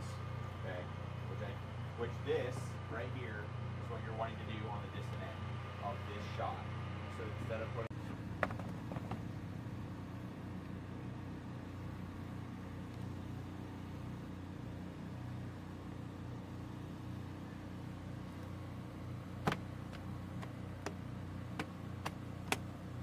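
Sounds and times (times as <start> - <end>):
engine droning steadily: 0.0 - 23.0.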